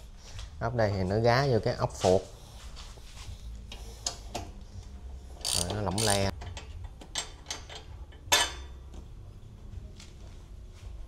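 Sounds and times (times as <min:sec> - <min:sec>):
socket wrench clicking: 0:05.4 - 0:08.0.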